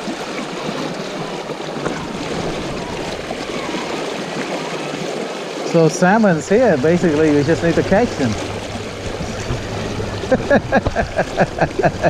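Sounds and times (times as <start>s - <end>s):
shallow river water rushing: 0.0s - 12.0s
man laughing: 9.2s - 12.0s.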